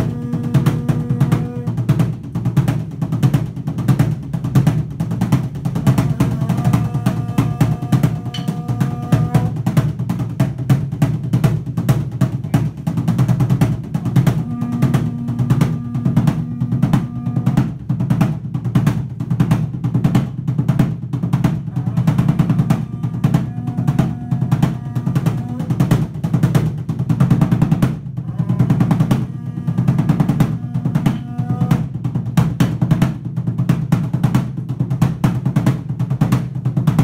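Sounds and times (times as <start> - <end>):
wind instrument long note: 0.0 - 1.8, 5.9 - 9.6, 14.0 - 17.8, 21.7 - 26.0, 28.2 - 31.9
drum roll with sticks: 0.0 - 37.0.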